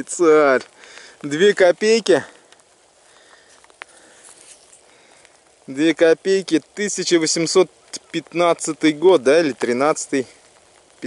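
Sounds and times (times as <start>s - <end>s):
faint rustling and handling noise: 0.0s - 11.0s.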